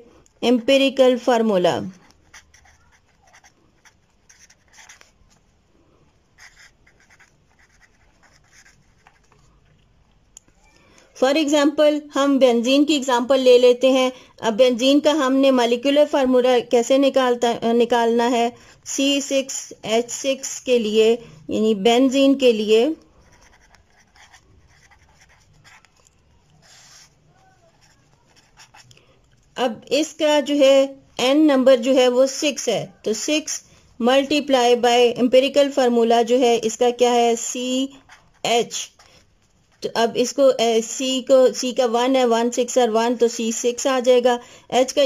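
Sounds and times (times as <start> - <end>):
pen scratching on paper: 1.8 - 5.2, 6.4 - 9.5, 23.2 - 28.9, 37.4 - 40.0.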